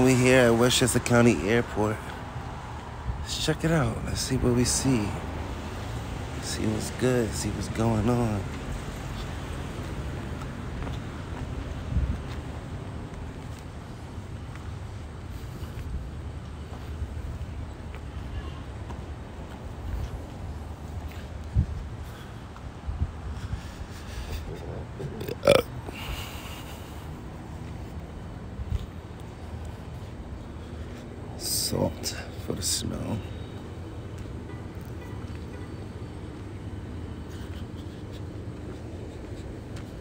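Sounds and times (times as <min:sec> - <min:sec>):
wind rumbling on microphone: 0:08.7 - 0:14.2, 0:15.2 - 0:25.1.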